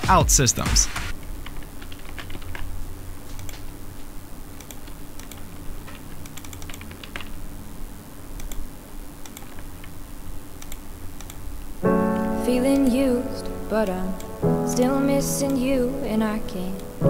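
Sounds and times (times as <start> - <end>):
low steady hum: 1.2 - 17.0
typing on computer keyboard: 1.4 - 2.6.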